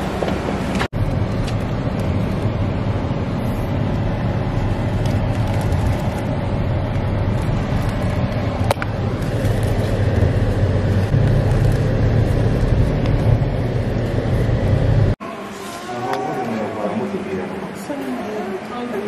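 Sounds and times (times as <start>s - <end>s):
car rumbling on unpaved road: 0.0s - 15.2s.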